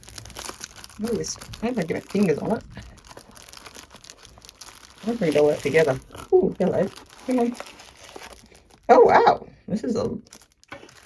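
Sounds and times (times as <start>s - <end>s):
plastic wrap crinkling: 0.0s - 9.1s, 9.9s - 11.0s.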